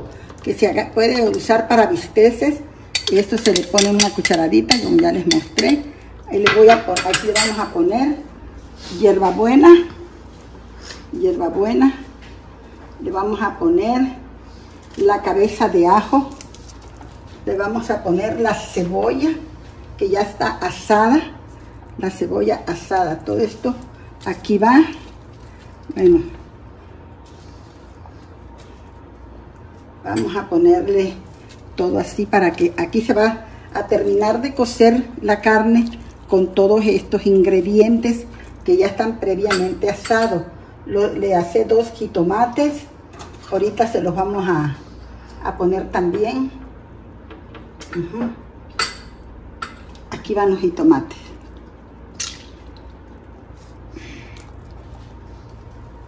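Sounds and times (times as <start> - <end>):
faint low kitchen hum: 0.0 - 56.0.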